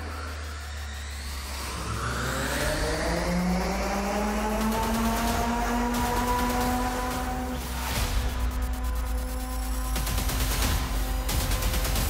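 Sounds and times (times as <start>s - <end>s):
rotor whine rising in pitch: 0.0s - 10.2s.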